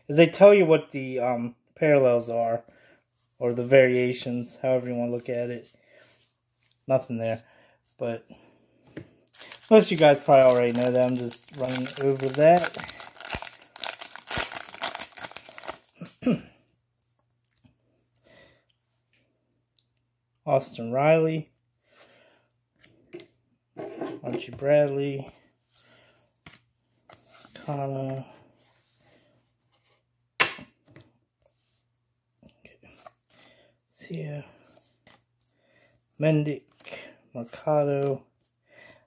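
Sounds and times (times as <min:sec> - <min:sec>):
cards clicking and rustling: 0:09.4 - 0:15.9
foil wrapper crinkling: 0:09.4 - 0:16.1.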